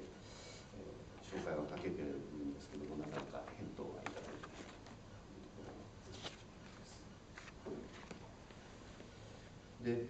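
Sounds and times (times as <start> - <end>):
man talking: 0.0 - 7.1, 9.8 - 10.0.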